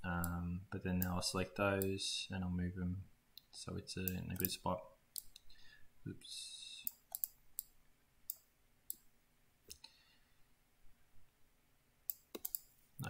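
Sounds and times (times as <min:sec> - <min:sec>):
computer mouse clicks: 0:05.2 - 0:05.5, 0:06.8 - 0:07.7, 0:12.1 - 0:12.7.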